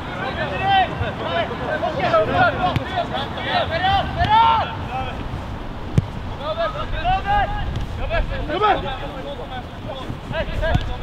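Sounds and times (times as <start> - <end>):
players shouting: 0.0 - 5.3.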